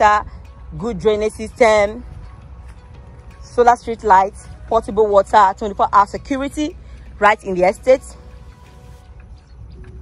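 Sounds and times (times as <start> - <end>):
soft background music: 0.0 - 10.0
wind rumble on microphone: 0.0 - 10.0.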